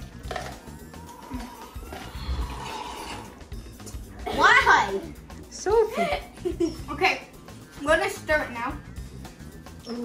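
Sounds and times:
drink slurped through a straw: 0.3 - 3.4.

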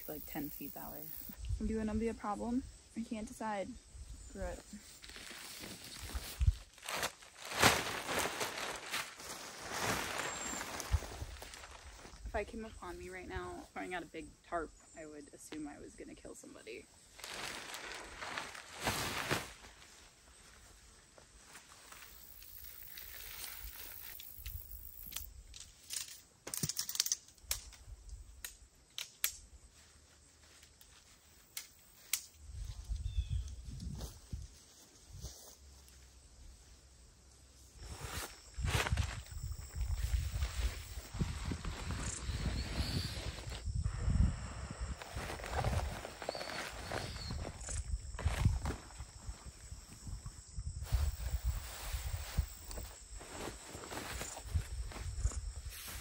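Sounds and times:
tent fabric rustling: 4.4 - 12.4, 17.1 - 24.3, 37.8 - 43.7, 44.8 - 50.0, 50.8 - 56.0
footsteps in grass: 4.7 - 12.2, 17.2 - 25.0, 29.7 - 36.0, 37.8 - 43.6, 44.9 - 50.1, 50.8 - 56.0.

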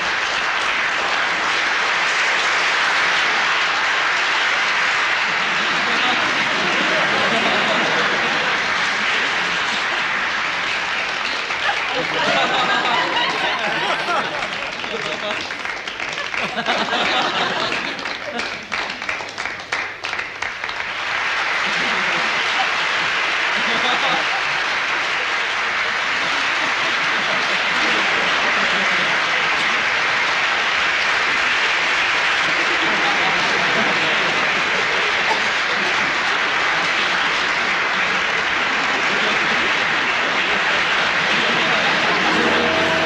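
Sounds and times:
audience applause: 0.0 - 43.0.

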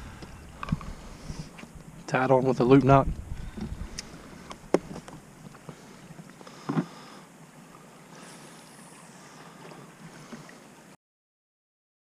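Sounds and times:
wind and water hiss: 0.0 - 11.0.

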